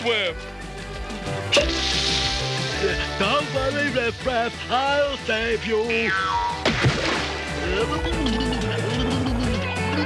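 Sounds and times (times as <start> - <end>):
background music: 0.0 - 10.0
cartoon pop: 1.5 - 2.3, 6.1 - 7.4
water hissing spray: 1.5 - 3.6.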